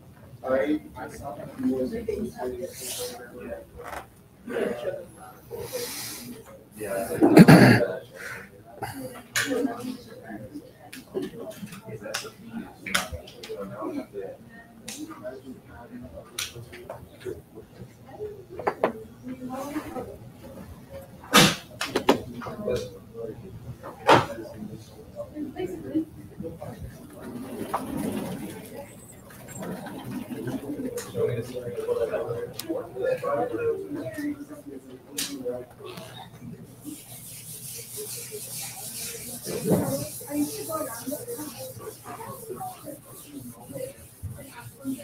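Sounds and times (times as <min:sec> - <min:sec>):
murmur of students talking: 0:00.0 - 0:45.0
indistinct voices talking: 0:25.7 - 0:34.0.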